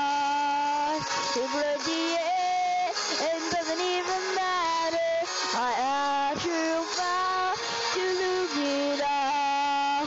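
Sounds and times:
karaoke backing track: 0.0 - 10.0
person singing: 0.0 - 10.0.

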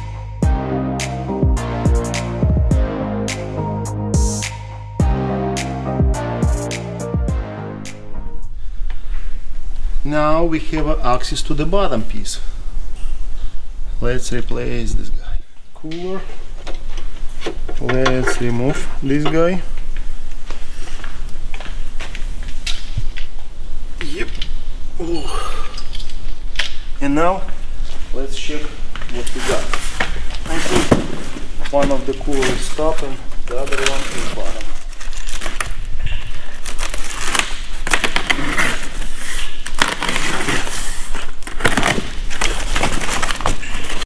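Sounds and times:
cardboard flaps crinkling: 29.1 - 44.0
blade slitting packing tape: 36.5 - 43.5.

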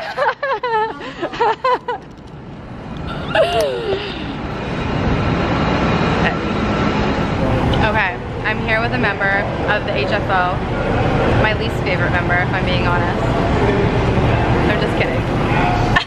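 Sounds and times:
steady noise: 0.0 - 16.0.

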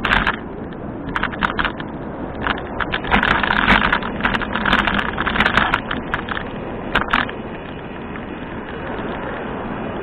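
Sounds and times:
bicycle tyre noise: 0.0 - 10.0
wind rush: 0.0 - 10.0
camera mount rattling: 1.1 - 7.3.

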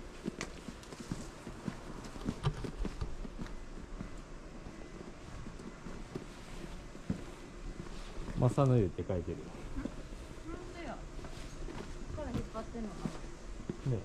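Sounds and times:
footsteps on pavement: 0.0 - 8.6, 10.6 - 13.9.

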